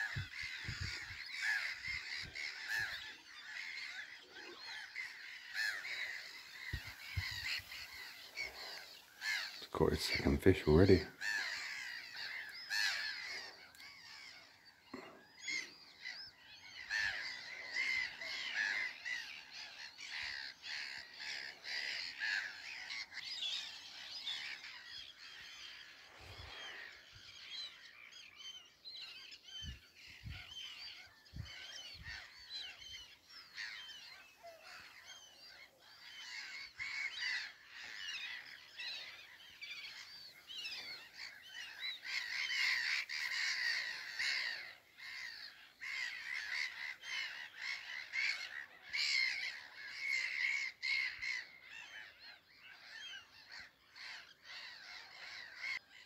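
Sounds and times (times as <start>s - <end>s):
small birds chirping: 0.0s - 56.0s.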